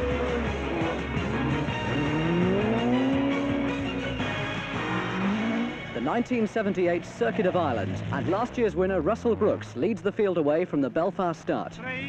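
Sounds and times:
rally car engine revving: 0:00.0 - 0:11.8
background music: 0:00.0 - 0:12.0.

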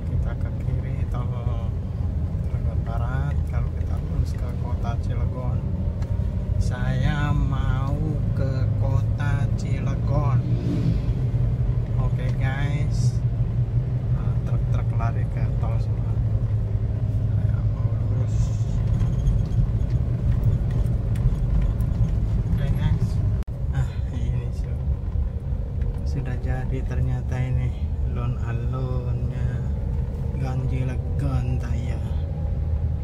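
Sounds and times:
car engine and road noise: 0:00.0 - 0:33.0.

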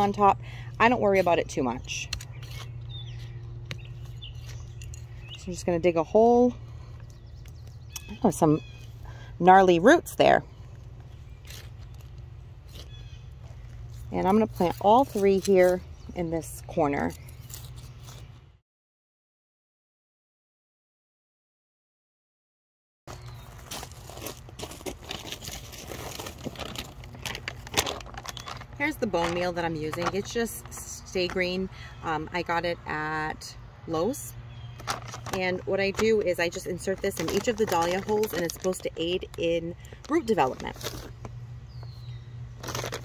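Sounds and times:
plastic bag crinkling: 0:23.5 - 0:30.8, 0:34.8 - 0:41.3, 0:42.6 - 0:43.0
powder pouring from a bag: 0:42.6 - 0:43.0.

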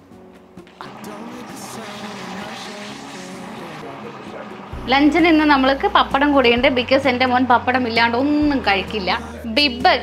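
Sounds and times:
faint background music: 0:00.0 - 0:10.0
food sizzling in hot oil: 0:00.7 - 0:10.0.

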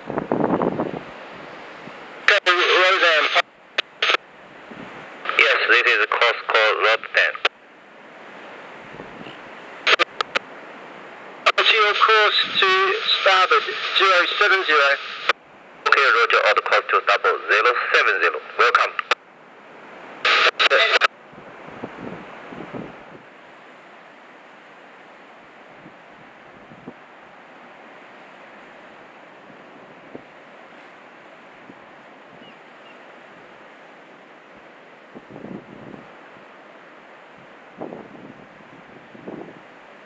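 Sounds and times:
surf: 0:00.0 - 0:40.0
wind: 0:00.0 - 0:40.0
clipped radio speech: 0:02.3 - 0:03.4, 0:04.0 - 0:04.2, 0:05.2 - 0:07.5, 0:09.9 - 0:10.4, 0:11.4 - 0:19.2, 0:20.2 - 0:21.1.

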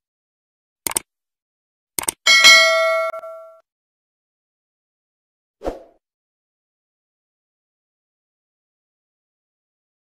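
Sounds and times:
mouse clicks: 0:00.9 - 0:01.1, 0:02.0 - 0:02.2
notification bell ding: 0:02.3 - 0:03.6.

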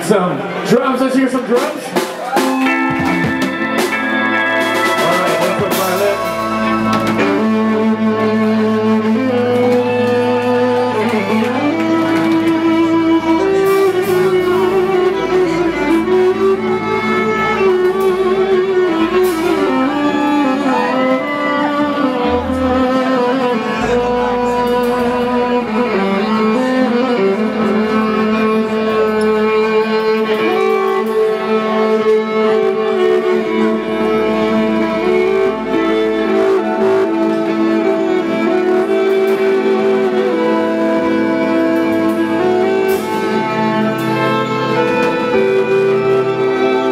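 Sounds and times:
electric violin melody: 0:00.0 - 0:46.9
bass line: 0:01.9 - 0:46.9.

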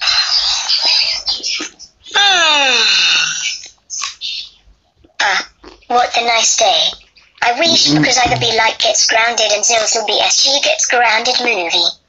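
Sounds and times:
brief vocal sound: 0:07.6 - 0:08.6
vocal sound falling in pitch: 0:07.6 - 0:08.6.

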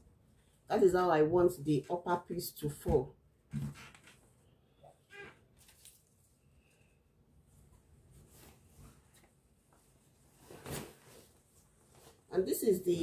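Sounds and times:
fabric rustling: 0:07.4 - 0:12.4.

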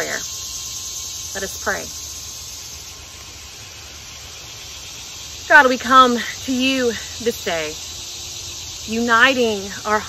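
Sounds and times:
high insect chorus: 0:00.0 - 0:10.0.

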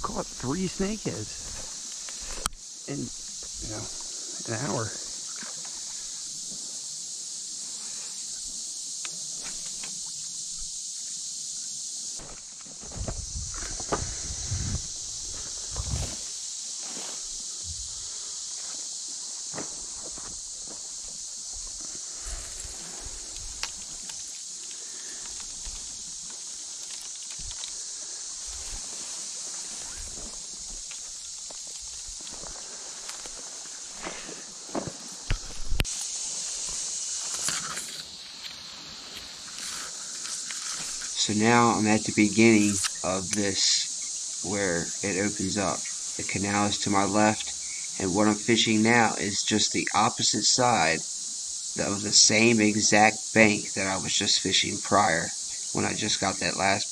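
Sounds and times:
steady high-pitched hiss: 0:00.0 - 0:56.9
footsteps through reeds and grass: 0:12.2 - 0:41.2.

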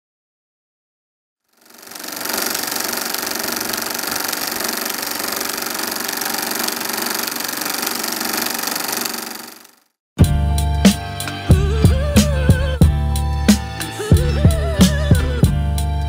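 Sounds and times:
film projector clattering: 0:01.6 - 0:09.9.

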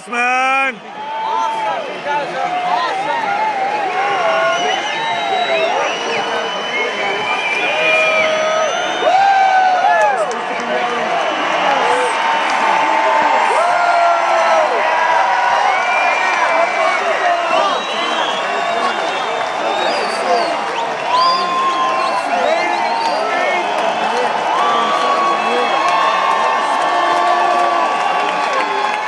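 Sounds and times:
concert crowd cheering: 0:00.0 - 0:29.0.

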